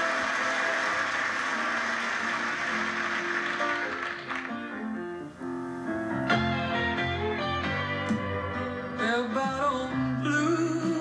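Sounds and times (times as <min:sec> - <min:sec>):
strummed guitar: 0:00.0 - 0:11.0.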